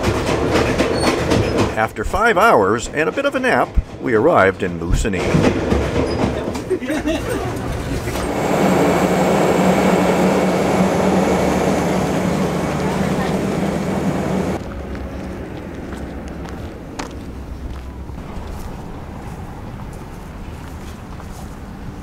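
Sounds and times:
passenger train rumbling: 0.0s - 22.0s
footsteps on dirt road: 11.0s - 22.0s.

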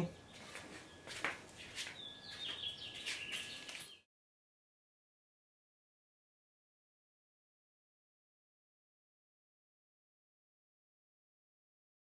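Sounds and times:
bird chirps: 0.0s - 4.1s.

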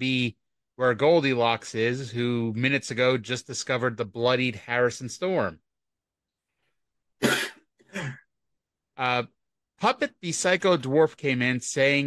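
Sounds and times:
person coughing: 7.2s - 8.3s.

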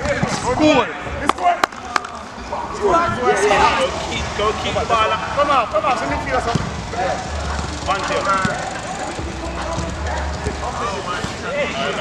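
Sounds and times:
footsteps and ball touches: 6.3s - 12.0s.

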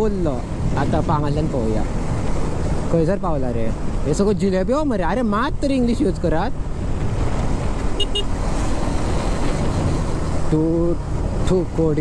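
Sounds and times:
motorcycle engine hum: 0.0s - 12.0s
wind rushing over microphone: 0.0s - 12.0s.

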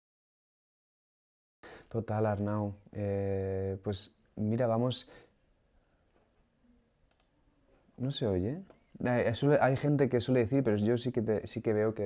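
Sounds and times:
soft clicks: 7.0s - 7.4s.

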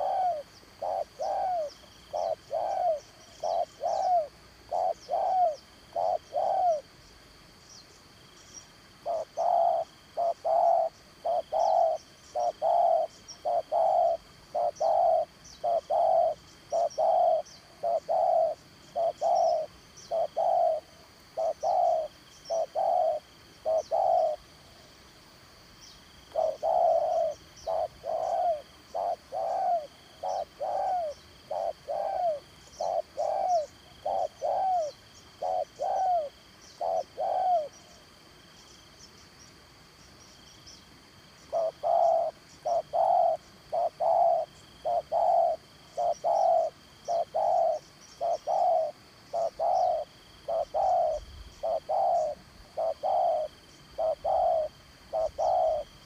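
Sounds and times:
doves cooing: 0.0s - 6.9s, 9.0s - 24.4s, 26.3s - 37.9s, 41.5s - 56.0s.

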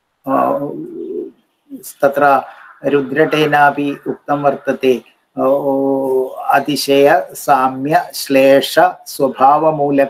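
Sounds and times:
man making a hesitant hum: 0.3s - 6.4s
intake of breath: 2.4s - 2.9s.

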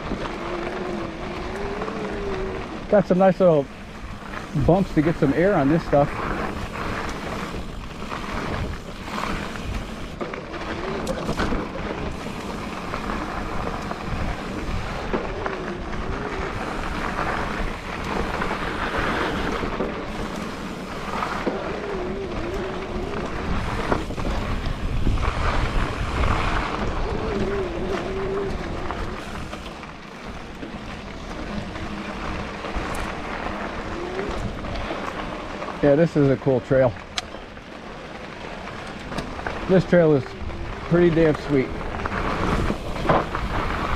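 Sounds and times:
wind rush on microphone: 0.0s - 29.7s, 30.3s - 36.1s, 39.0s - 43.9s
bike rattling and knocking: 0.0s - 43.9s
tyres on dirt: 0.0s - 43.9s.

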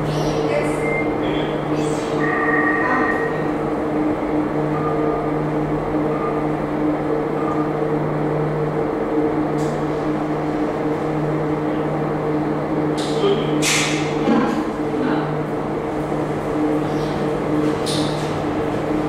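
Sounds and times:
funicular car humming on track: 0.0s - 19.0s.

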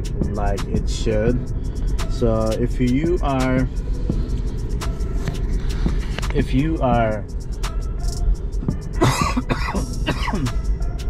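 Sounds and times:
car cabin rumble: 0.0s - 11.0s
man coughing: 9.0s - 10.6s.

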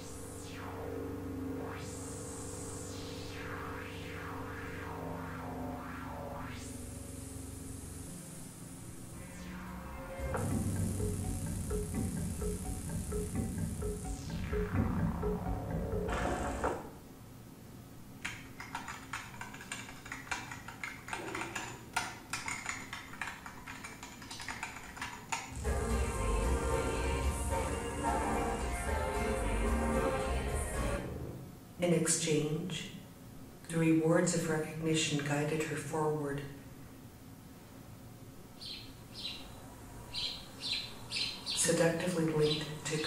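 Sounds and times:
computer keyboard typing: 18.2s - 25.6s
faint high bird-like chirps: 38.6s - 41.7s.

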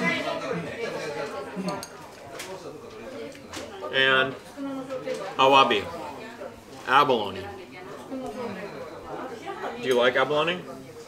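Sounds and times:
background chatter of voices: 0.0s - 11.0s.

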